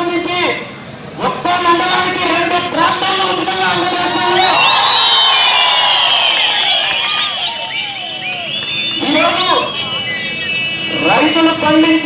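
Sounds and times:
crowd noise: 1.2s - 12.0s.

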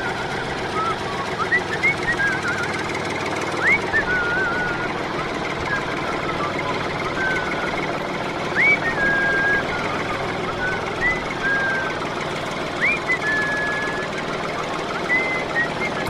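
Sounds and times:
whistled chirps: 0.0s - 7.9s, 8.5s - 12.2s, 12.8s - 16.0s
toy tractor engine rattling: 0.0s - 16.0s.

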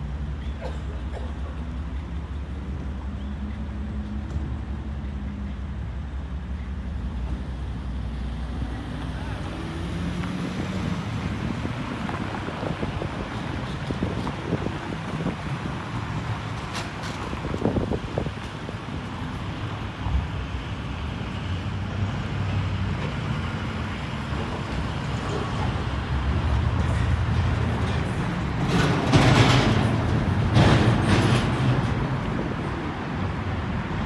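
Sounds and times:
road traffic rumble: 0.0s - 34.0s.

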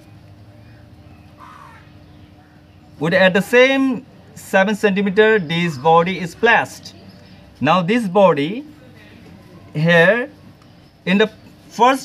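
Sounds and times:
steady low hum: 0.0s - 12.0s
bird call: 0.7s - 2.8s.

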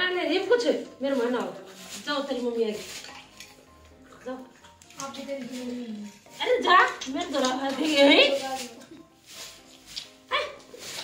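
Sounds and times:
puppies eating from steel bowl: 2.9s - 9.0s.

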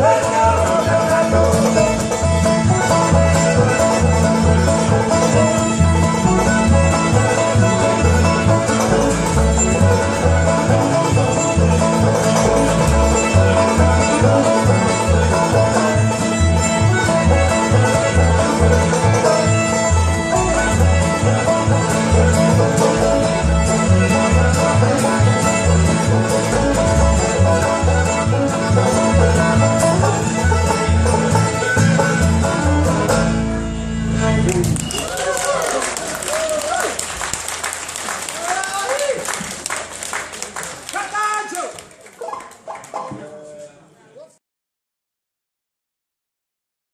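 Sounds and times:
strummed acoustic guitar: 0.0s - 34.9s
upright bass plucking: 0.0s - 35.2s
fiddle: 0.0s - 38.7s
banjo rolls: 0.0s - 43.5s.

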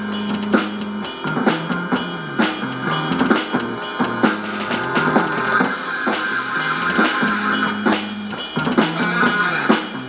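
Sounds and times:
electronic drum kit hits: 0.0s - 10.0s
heavy rock song: 0.0s - 10.0s.

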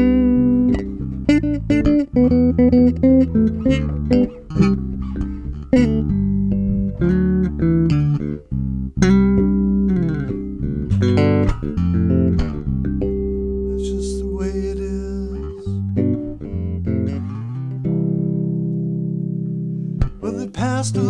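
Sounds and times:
electric bass tapped and plucked: 0.0s - 21.0s.

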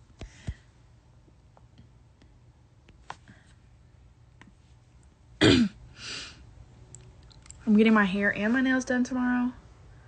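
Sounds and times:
woman clearing her throat: 5.4s - 5.8s.

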